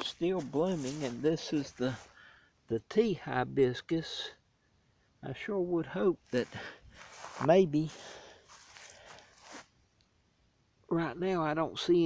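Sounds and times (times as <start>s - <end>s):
scuff: 0.0s - 2.1s, 6.4s - 9.7s
faint rustling: 0.0s - 2.3s, 6.2s - 9.8s.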